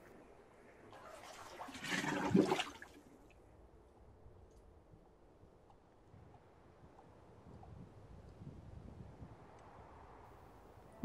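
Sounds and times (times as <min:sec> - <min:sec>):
bathwater sloshing and splashing: 0:01.0 - 0:03.0.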